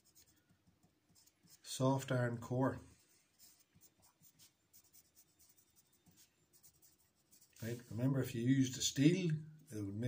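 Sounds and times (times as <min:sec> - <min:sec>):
pencil writing on paper: 0:00.0 - 0:01.7, 0:03.3 - 0:07.9.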